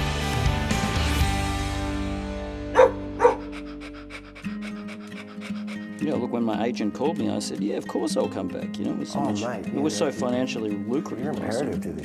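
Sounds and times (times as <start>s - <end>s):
dog barks: 2.7s - 3.9s
dog panting: 2.8s - 6.8s.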